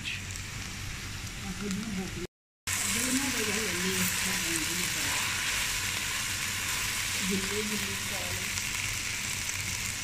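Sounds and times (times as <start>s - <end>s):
okra sizzling in oil: 0.0s - 10.0s
spatula turning food in pan: 2.7s - 10.0s.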